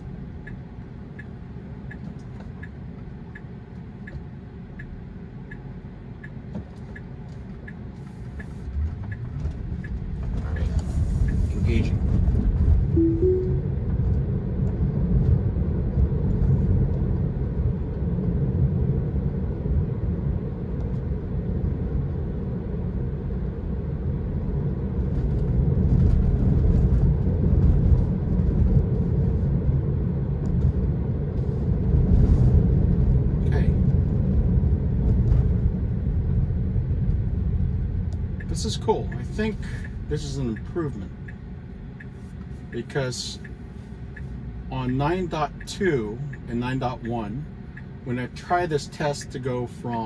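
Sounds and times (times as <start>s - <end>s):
road and tyre noise in car cabin: 0.0s - 50.0s
two-note chime: 13.0s - 13.8s.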